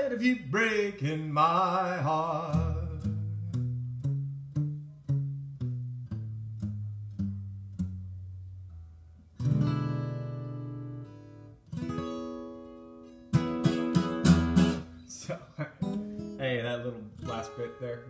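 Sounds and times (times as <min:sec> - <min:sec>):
acoustic guitar: 0:00.0 - 0:18.0.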